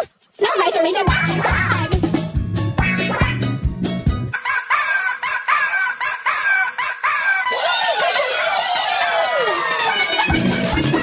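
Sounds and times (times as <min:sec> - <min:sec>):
music with bass beat: 0:01.1 - 0:04.3, 0:10.2 - 0:11.0
high-pitched cartoon rooster voice: 0:04.4 - 0:10.0.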